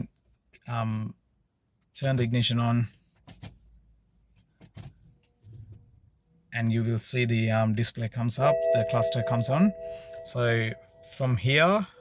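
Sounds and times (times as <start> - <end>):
soft low sound: 8.4 - 11.4.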